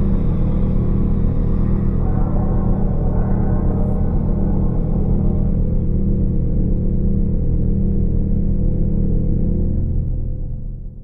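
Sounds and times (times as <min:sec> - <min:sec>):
slow low pulsing: 0:00.0 - 0:08.8
deep sustained drone: 0:00.0 - 0:10.9.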